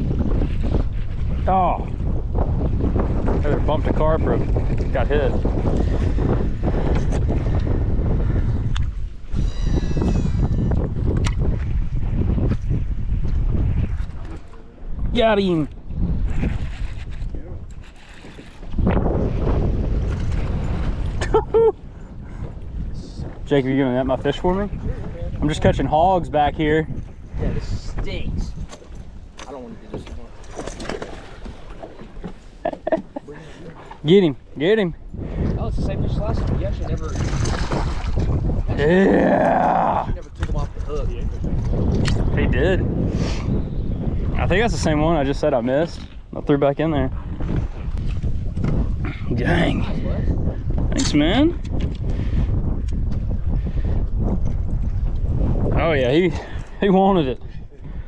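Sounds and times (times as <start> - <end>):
wind buffeting microphone: 0.0 - 58.0
water splashing: 29.5 - 34.1, 37.1 - 39.1.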